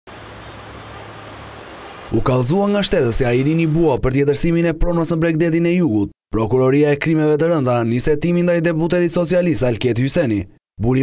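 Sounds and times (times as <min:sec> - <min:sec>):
distant traffic: 0:00.1 - 0:03.9.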